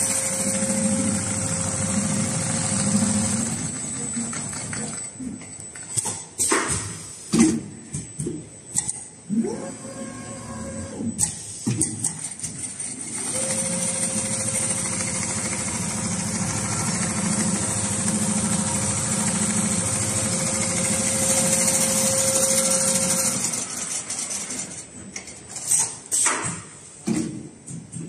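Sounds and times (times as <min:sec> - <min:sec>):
sewing machine running: 0:00.0 - 0:05.1, 0:12.3 - 0:24.9.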